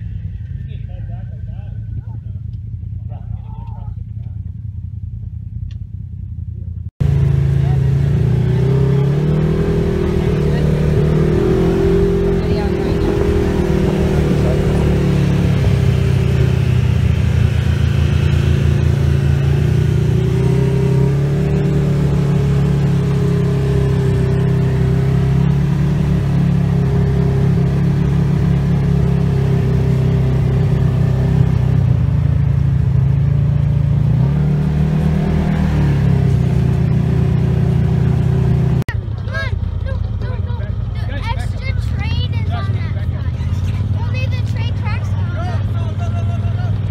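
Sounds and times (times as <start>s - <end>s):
vehicle engine droning: 0.0s - 46.9s.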